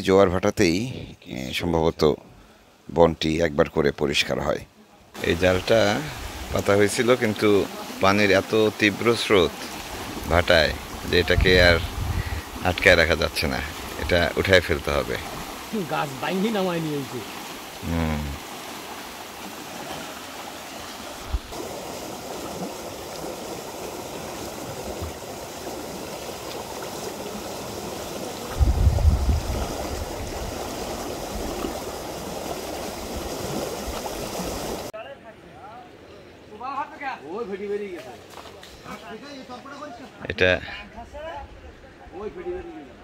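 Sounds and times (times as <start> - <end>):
water rushing through creek: 5.1 - 35.0.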